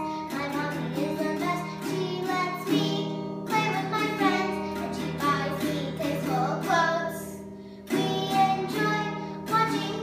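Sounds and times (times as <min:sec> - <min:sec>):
girl singing: 0:00.0 - 0:10.0
toy acoustic guitar strumming: 0:00.0 - 0:10.0.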